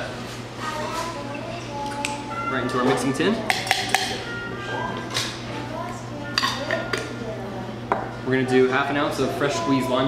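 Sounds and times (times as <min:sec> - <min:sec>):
faint background music: 0:00.0 - 0:10.0.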